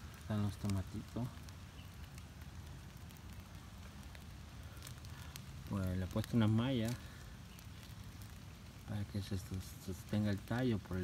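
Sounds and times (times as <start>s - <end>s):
rain drops ticking: 0.0s - 11.0s.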